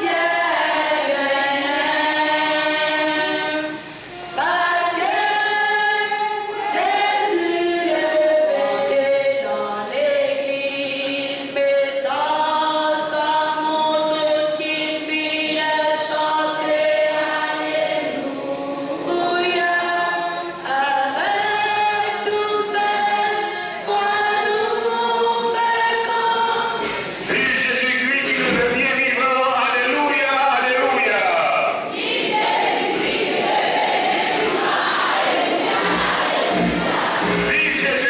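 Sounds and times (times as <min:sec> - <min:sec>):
congregation singing a hymn: 0:00.0 - 0:38.0.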